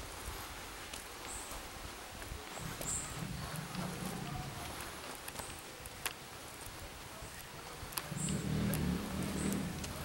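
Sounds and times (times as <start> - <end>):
vehicle engine running: 7.9 - 10.0.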